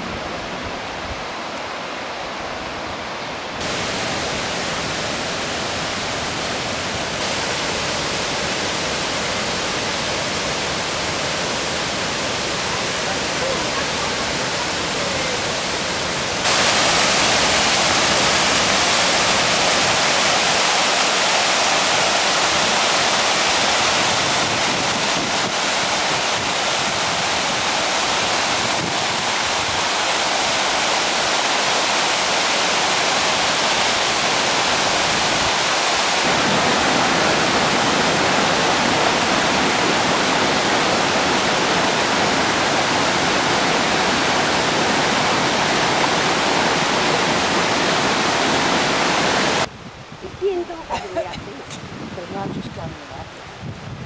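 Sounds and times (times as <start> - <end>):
water rushing over rocks: 0.0 - 54.0.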